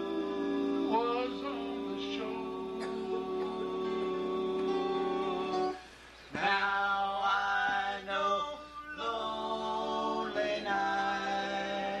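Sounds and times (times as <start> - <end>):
acoustic guitar: 0.0 - 12.0
male vocal group harmonizing: 0.0 - 12.0.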